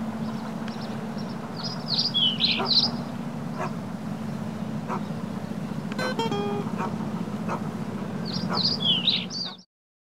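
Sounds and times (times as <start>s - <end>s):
low steady hum: 0.0s - 9.6s
birds chirping: 0.0s - 9.7s.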